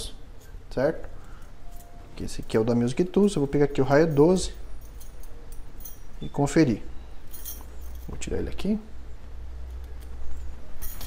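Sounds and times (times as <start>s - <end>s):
metal gauges clinking: 0.0s - 11.0s
metal jingle: 0.3s - 8.3s, 10.3s - 11.0s.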